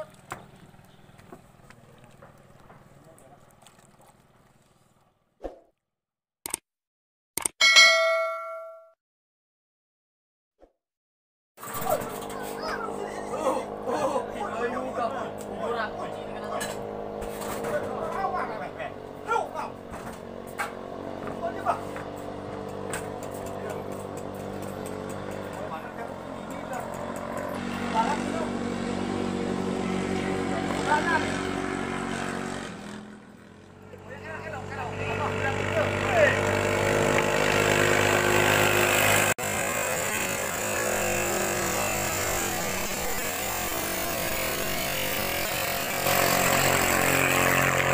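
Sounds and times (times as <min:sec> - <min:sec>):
notification bell ding: 0:07.6 - 0:09.0
boat engine drone: 0:11.6 - 0:47.9.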